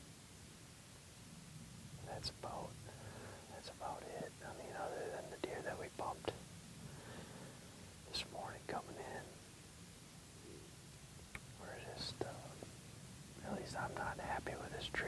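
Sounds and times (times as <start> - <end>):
man whispering: 2.0 - 6.4, 8.0 - 9.4, 11.5 - 12.7, 13.4 - 15.0.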